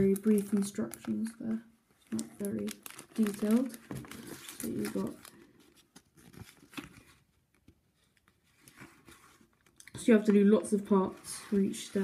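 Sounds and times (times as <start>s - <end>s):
paper rustling and crinkling: 2.0s - 12.0s.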